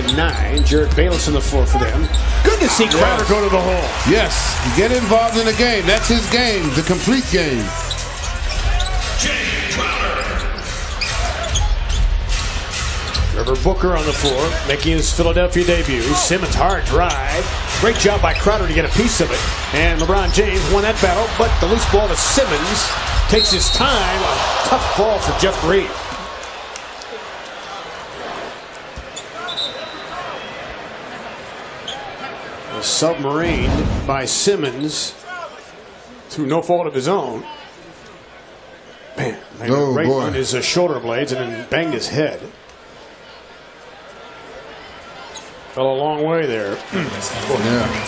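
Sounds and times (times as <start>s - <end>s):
arena crowd noise: 0.0s - 48.0s.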